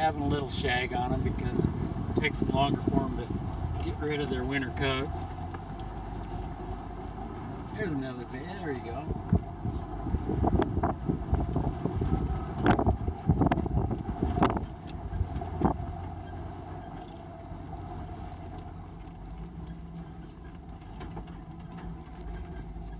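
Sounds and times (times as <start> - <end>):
vehicle engine low drone: 0.0 - 22.9.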